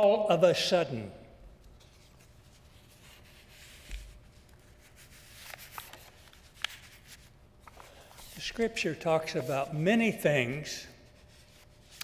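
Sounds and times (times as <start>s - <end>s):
paper and clothing rustling: 1.8s - 9.7s.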